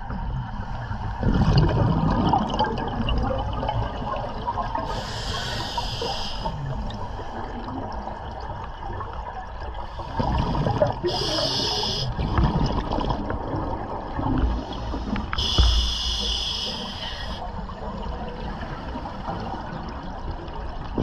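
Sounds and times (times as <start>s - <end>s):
exhaled bubbles gurgling: 0.0s - 21.0s
regulator inhalation hiss: 4.9s - 6.5s, 11.1s - 12.2s, 14.8s - 17.4s.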